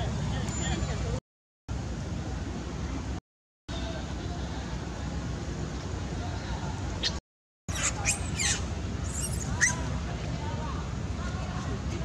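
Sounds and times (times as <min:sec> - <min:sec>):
monkey squeaks and squeals: 0:07.0 - 0:09.9.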